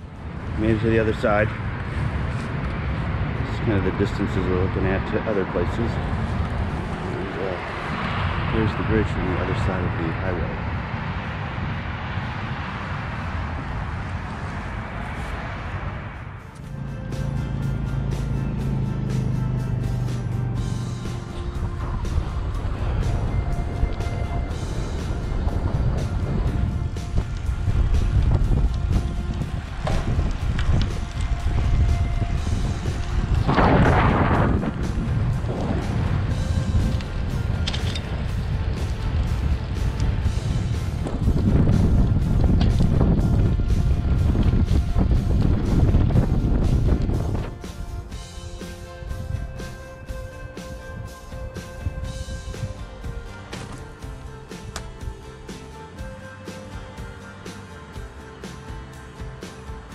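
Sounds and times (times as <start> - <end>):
wind buffeting microphone: 0.0 - 16.5, 20.2 - 56.2
background music: 15.7 - 59.9.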